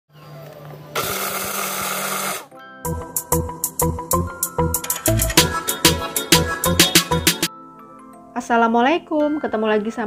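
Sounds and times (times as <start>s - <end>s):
electric blender motor running: 0.9s - 2.5s.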